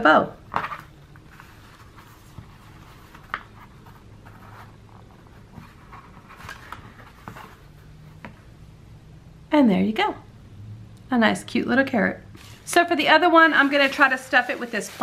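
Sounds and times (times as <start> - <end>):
low steady hum: 0.0 - 15.0
twine and fabric rustling: 12.4 - 15.0.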